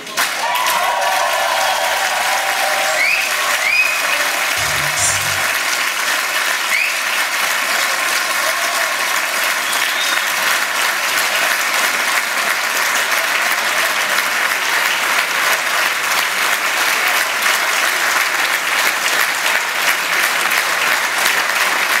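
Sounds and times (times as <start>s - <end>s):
audience applauding: 0.0s - 22.0s.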